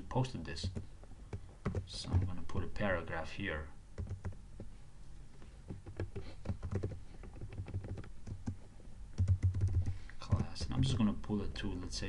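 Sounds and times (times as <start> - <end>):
typing on computer keyboard: 0.6 - 2.4, 4.0 - 4.4, 5.8 - 8.6, 9.2 - 11.0.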